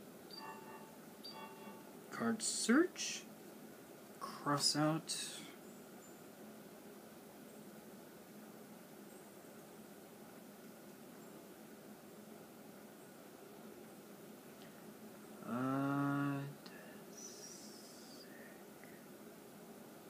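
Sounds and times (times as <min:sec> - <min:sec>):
man humming: 0:15.4 - 0:18.3.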